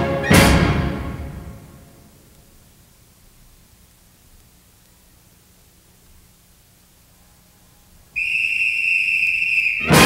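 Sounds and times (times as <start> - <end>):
faint hiss: 0.8 - 10.0
whistle long high note: 8.2 - 10.0.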